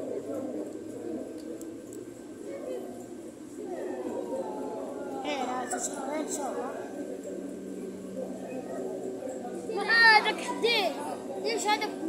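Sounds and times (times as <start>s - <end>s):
people's voices: 0.0s - 12.0s
bird cooing: 2.5s - 9.2s.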